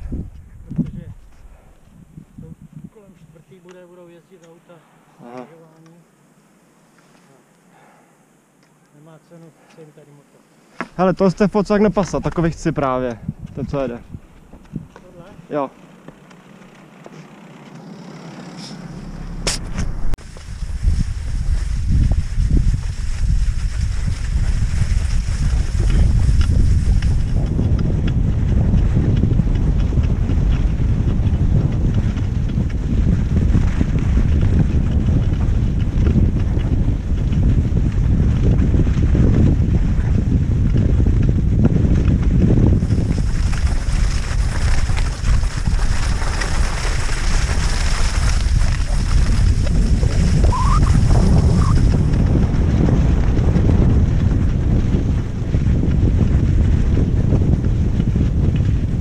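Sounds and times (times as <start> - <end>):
wind buffeting microphone: 0.0 - 4.1, 10.9 - 15.8, 18.8 - 59.0.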